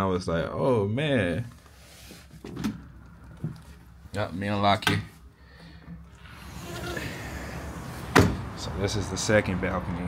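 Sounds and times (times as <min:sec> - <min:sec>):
outdoor city noise: 0:02.4 - 0:10.0
sliding glass door opening: 0:06.2 - 0:08.6.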